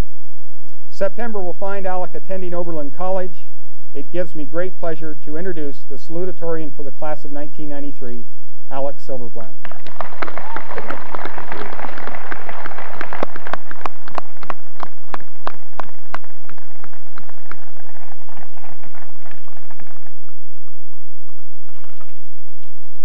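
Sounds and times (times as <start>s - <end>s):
loud separate claps: 9.6s - 20.1s
audience applauding: 9.6s - 20.3s.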